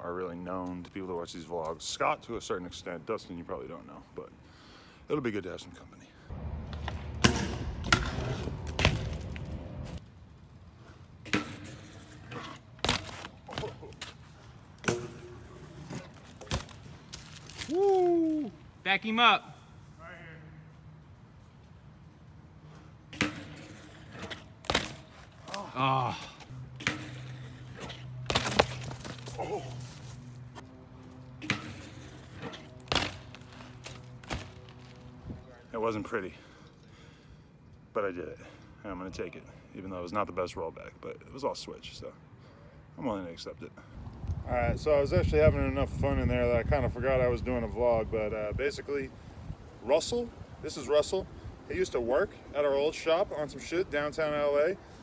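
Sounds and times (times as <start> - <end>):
bike tyres rolling on concrete: 6.3 - 18.9, 20.9 - 37.4.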